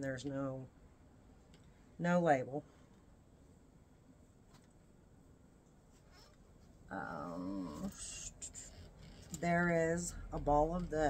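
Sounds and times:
faint rustle: 4.4s - 11.0s
woman saying um: 6.9s - 8.6s.

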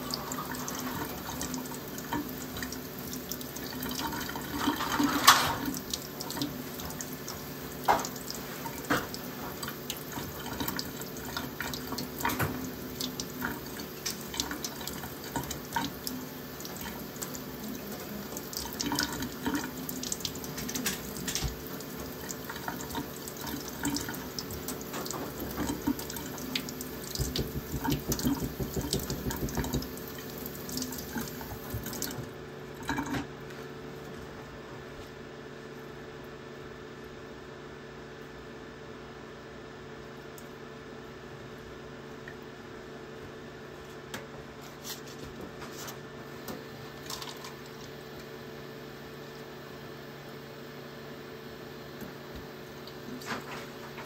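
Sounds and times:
faucet running water: 0.0s - 33.3s, 46.9s - 48.5s
water splashing into sink: 0.0s - 33.3s, 47.0s - 48.0s.

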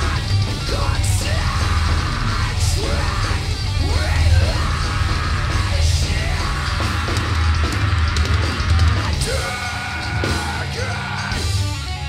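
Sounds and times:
singer yelling into microphone: 0.0s - 11.6s
heavy metal band playing live: 0.0s - 12.0s.

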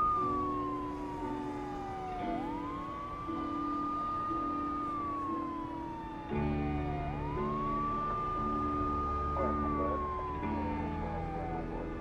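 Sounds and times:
emergency siren wailing: 0.0s - 12.0s.

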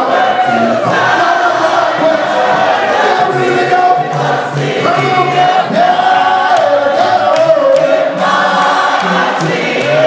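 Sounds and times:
voices singing along: 0.0s - 10.0s.

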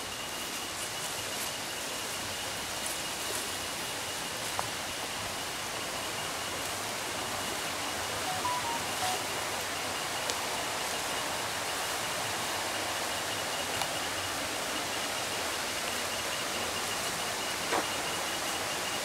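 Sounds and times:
outdoor hiss: 0.0s - 19.0s
faint short tones: 8.3s - 9.3s.

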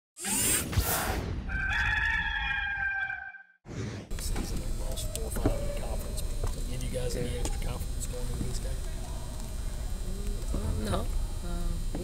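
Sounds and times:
rooster crowing: 1.5s - 3.5s
steady background noise: 4.1s - 12.0s.

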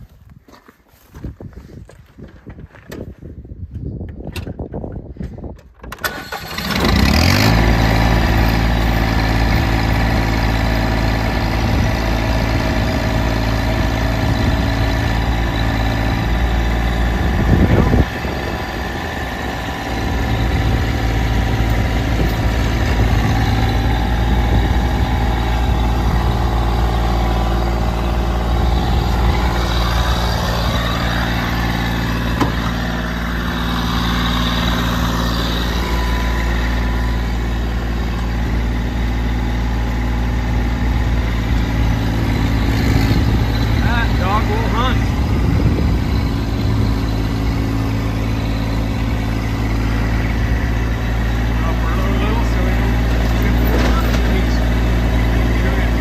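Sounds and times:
tractor diesel engine running: 4.7s - 56.0s.

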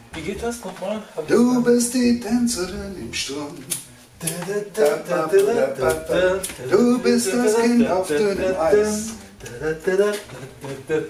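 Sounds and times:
man singing: 1.2s - 11.0s.

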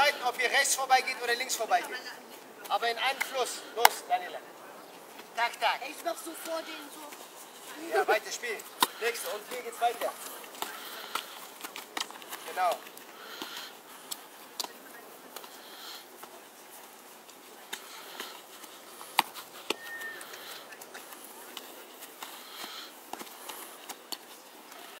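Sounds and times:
footballs being kicked: 5.9s - 15.6s, 21.1s - 24.9s.

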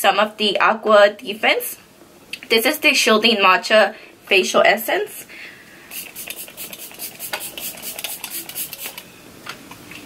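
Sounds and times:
spray bottle spritzes: 5.9s - 9.0s.

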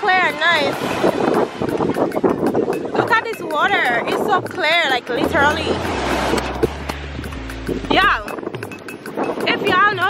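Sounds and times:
small waves washing onto sand: 0.0s - 7.2s
wind on microphone: 0.0s - 10.0s.

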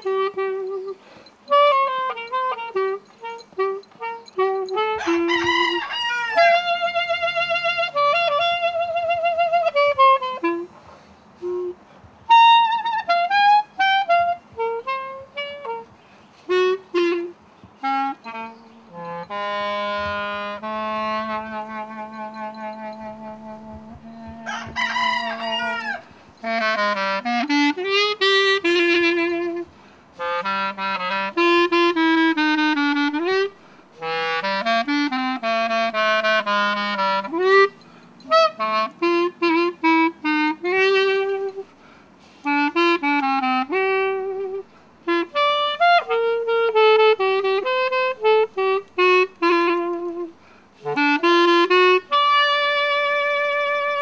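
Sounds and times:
solo clarinet melody: 0.0s - 54.0s.

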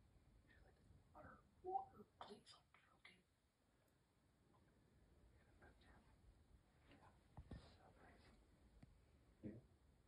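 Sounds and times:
person whispering: 0.5s - 3.3s, 5.4s - 6.2s, 6.8s - 8.4s.

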